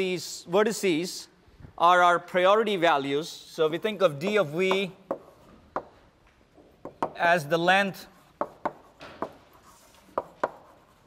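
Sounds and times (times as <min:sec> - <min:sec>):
chalk tapping on blackboard: 0:04.6 - 0:06.0, 0:06.8 - 0:07.2, 0:08.1 - 0:11.0
faint chalk scratching: 0:07.9 - 0:11.0.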